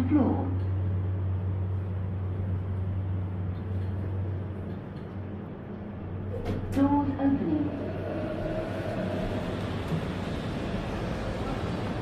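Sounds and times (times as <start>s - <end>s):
lift hum with faint rumble: 0.0s - 12.0s.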